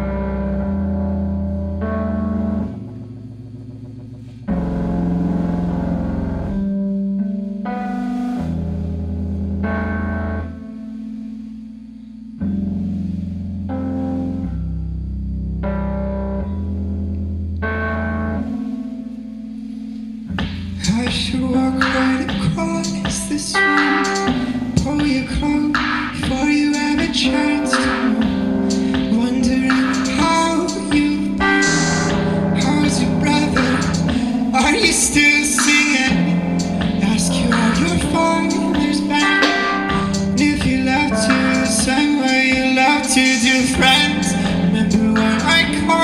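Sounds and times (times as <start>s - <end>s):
bass notes: 0.0s - 46.0s
electric guitar chords: 0.0s - 46.0s
drums and cymbals: 20.4s - 27.1s, 27.7s - 42.6s.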